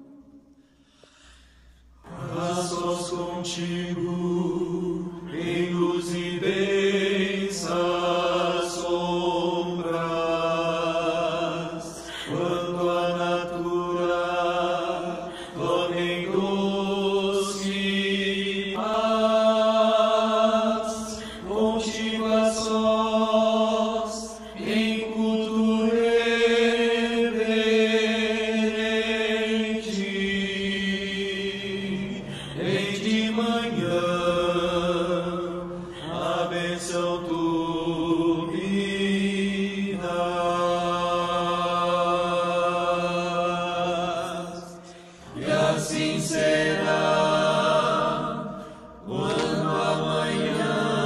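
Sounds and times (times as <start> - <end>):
men's choir singing a hymn: 2.0 - 51.0.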